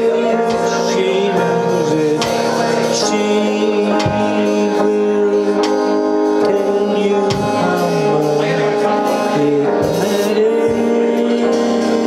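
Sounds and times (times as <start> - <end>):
electric keyboard chords: 0.0 - 12.0.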